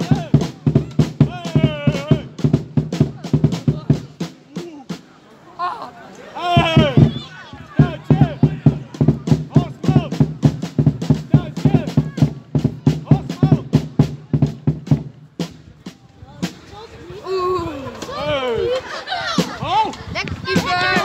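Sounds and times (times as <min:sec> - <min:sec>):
football supporters chanting: 0:00.0 - 0:02.4, 0:06.4 - 0:13.9
beaten drum: 0:00.0 - 0:05.1, 0:06.6 - 0:16.6, 0:20.4 - 0:21.0.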